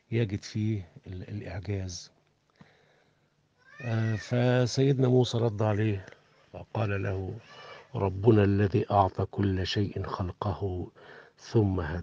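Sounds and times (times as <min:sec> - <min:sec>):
man speaking: 0:00.0 - 0:02.1, 0:03.8 - 0:12.0.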